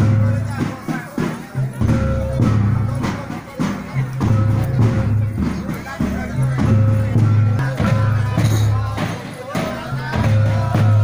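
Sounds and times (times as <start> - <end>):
music with repeating beat: 0.0 - 11.0.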